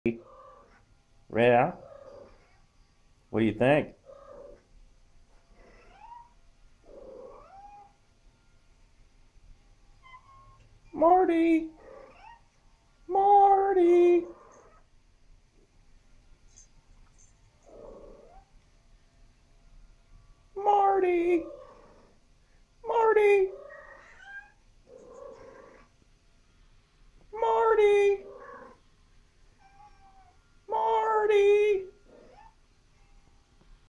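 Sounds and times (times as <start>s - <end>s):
cat making soft calls: 0.1s - 0.8s, 4.0s - 4.7s, 5.6s - 8.0s, 11.7s - 12.4s, 16.5s - 18.5s, 21.2s - 22.1s, 22.8s - 25.9s, 27.3s - 28.8s, 29.6s - 32.6s.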